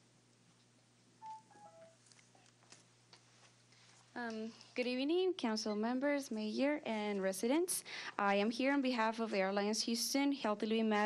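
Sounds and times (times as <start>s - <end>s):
descending three-tone electronic chime: 1.2s - 2.0s.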